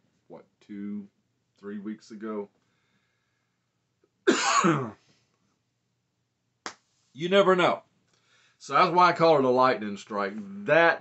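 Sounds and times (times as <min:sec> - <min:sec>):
man coughing: 0:04.3 - 0:05.0.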